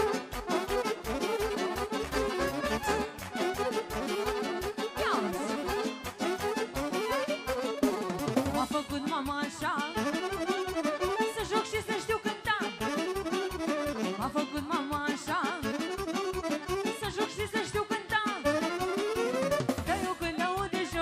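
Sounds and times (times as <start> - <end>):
accordion playing quick runs: 0.0 - 20.7.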